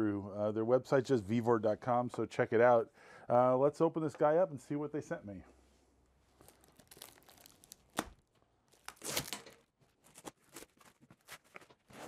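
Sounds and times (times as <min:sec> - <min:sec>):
plastic wrap tearing and crinkling: 0:06.4 - 0:12.0.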